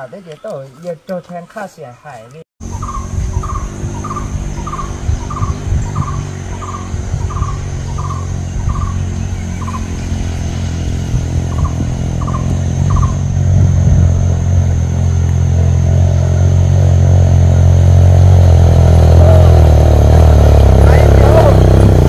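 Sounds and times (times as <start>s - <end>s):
motorcycle engine hum: 2.6s - 22.0s.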